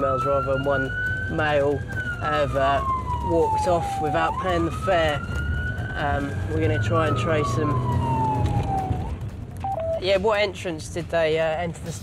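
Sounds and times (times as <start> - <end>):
police siren wail: 0.0 - 10.0.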